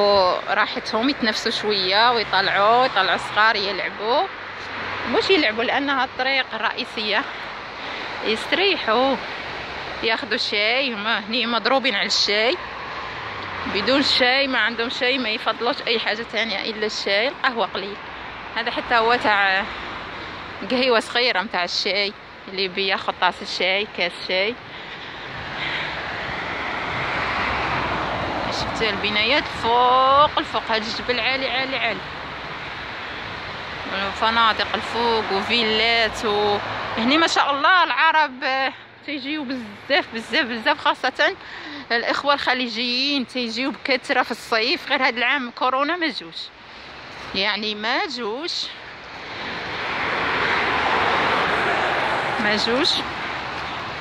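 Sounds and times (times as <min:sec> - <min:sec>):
passing motor vehicle: 0:00.0 - 0:21.4, 0:22.1 - 0:38.1, 0:46.8 - 0:54.0
motor vehicle passing: 0:24.5 - 0:37.6, 0:48.9 - 0:54.0.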